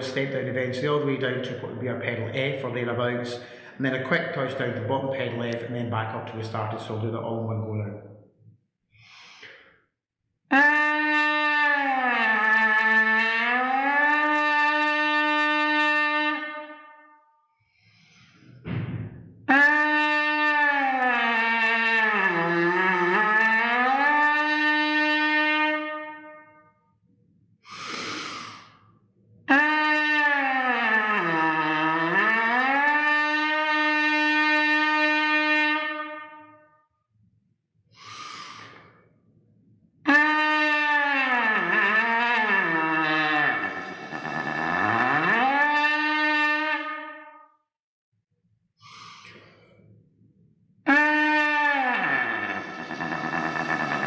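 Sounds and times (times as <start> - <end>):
quick breaths: 3.4 - 3.8, 8.9 - 9.9, 17.7 - 18.6, 27.6 - 28.8, 37.9 - 39.1, 48.8 - 50.0
trumpet leadpipe buzzing: 10.5 - 17.0, 19.5 - 26.7, 29.5 - 36.7, 40.1 - 47.4, 50.9 - 54.0.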